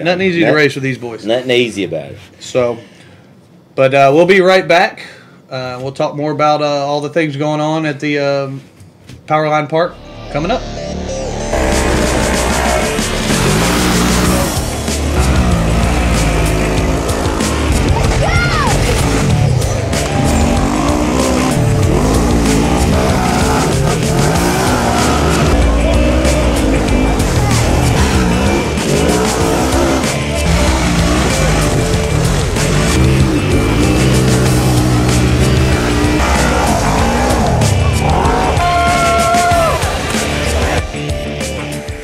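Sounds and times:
background music: 9.8s - 42.0s
engines revving hard: 11.5s - 40.8s.

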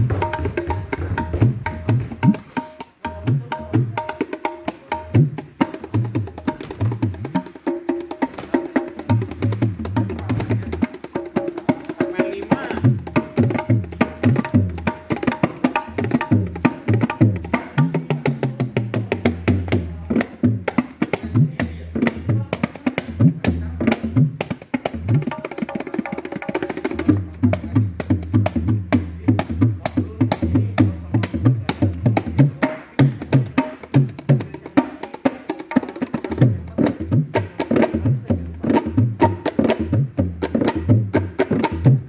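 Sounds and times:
hand drums playing fast rhythm: 0.0s - 42.0s.

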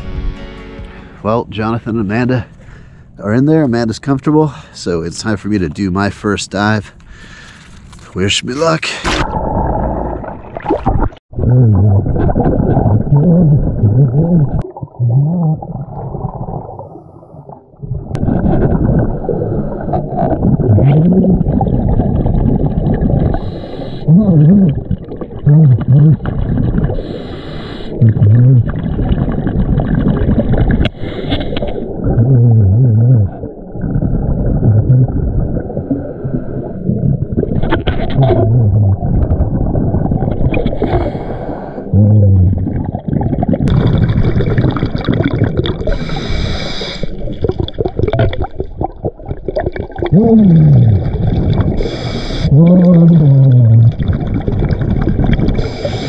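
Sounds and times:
regulator breathing and bubbles: 8.8s - 56.0s
low wavering underwater tones: 9.2s - 27.2s, 31.5s - 46.0s.

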